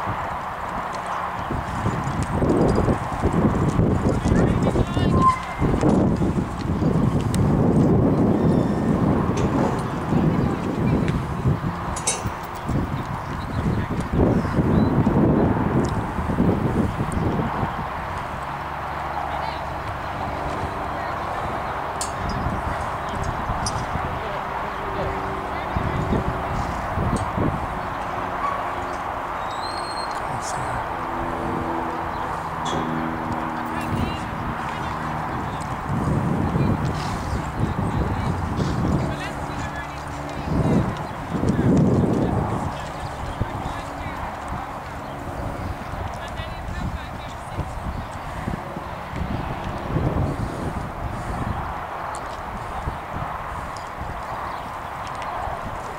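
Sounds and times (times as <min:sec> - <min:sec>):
pony hooves cantering: 0:00.0 - 0:14.3, 0:18.0 - 0:50.3.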